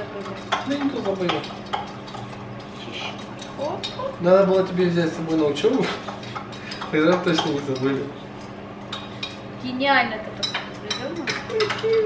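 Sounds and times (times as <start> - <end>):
teaspoon stirring in a glass: 10.4 - 12.0.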